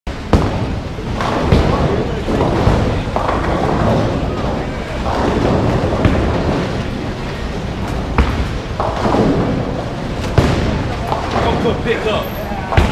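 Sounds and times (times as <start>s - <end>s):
bowling balls rolling: 0.1s - 12.9s
background chatter: 0.7s - 12.9s.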